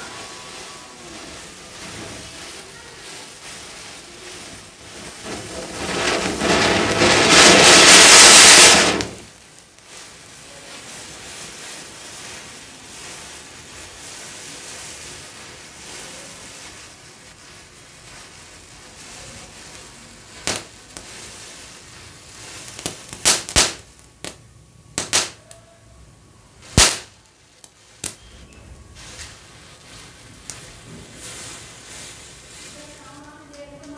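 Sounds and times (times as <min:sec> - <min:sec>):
burning matchstick chain hissing: 0:00.0 - 0:24.4, 0:26.6 - 0:33.5
fountain firecracker hissing: 0:00.0 - 0:24.4, 0:26.5 - 0:27.2
sharp firecracker bangs: 0:04.9 - 0:09.4, 0:20.4 - 0:21.1, 0:22.7 - 0:24.4, 0:25.0 - 0:25.4, 0:26.6 - 0:27.2.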